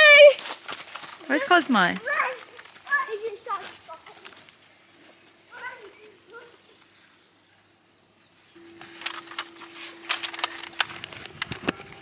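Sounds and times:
children shouting in play: 5.5 - 6.7.

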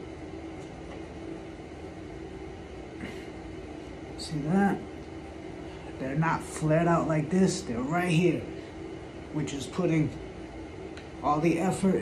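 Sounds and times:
faint constant tone: 0.0 - 12.0
low machine hum: 0.0 - 12.0.

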